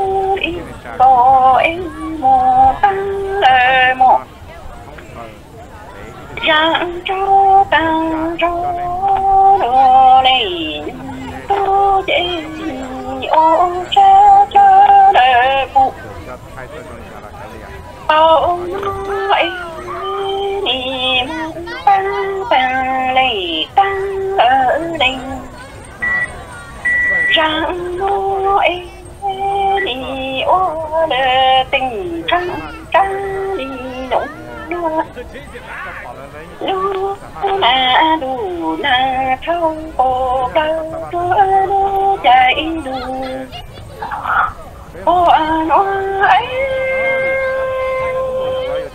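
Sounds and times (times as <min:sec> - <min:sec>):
person singing long notes: 0:00.0 - 0:04.3, 0:06.4 - 0:16.0, 0:18.0 - 0:26.2, 0:27.0 - 0:35.2, 0:36.6 - 0:43.6, 0:45.0 - 0:48.9.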